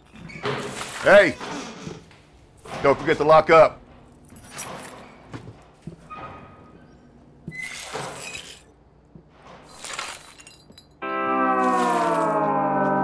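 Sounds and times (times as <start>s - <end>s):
glass clinking and scraping: 7.5s - 8.8s, 9.6s - 11.0s.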